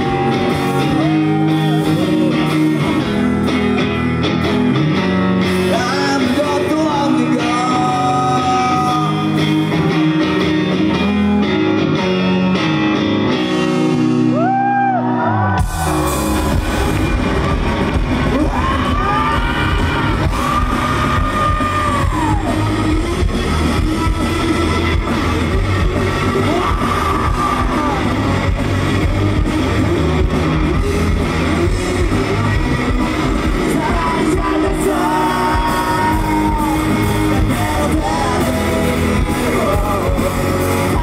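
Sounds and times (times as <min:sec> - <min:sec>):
loud live rock band: 0:00.0 - 0:41.0.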